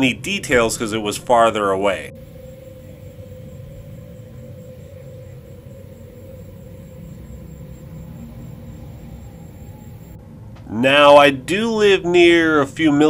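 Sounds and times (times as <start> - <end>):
faint hum: 0.0 - 13.0
low rumble: 0.0 - 13.0.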